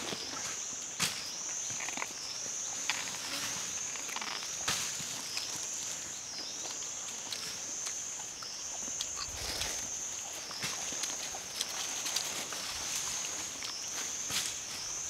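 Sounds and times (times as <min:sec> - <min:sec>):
insects buzzing: 0:00.0 - 0:15.0.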